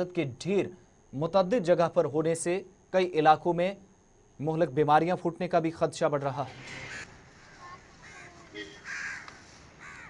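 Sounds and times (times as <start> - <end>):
crows cawing: 6.7 - 10.0.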